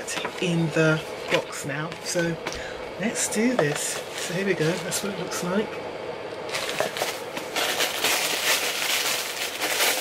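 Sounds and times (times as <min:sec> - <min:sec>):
tissue paper crinkling: 0:06.5 - 0:10.0.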